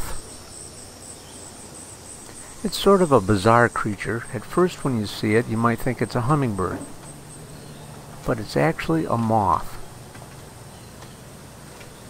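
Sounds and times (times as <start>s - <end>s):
faint background hiss: 0.0s - 12.0s
high-pitched insect chorus: 0.0s - 12.0s.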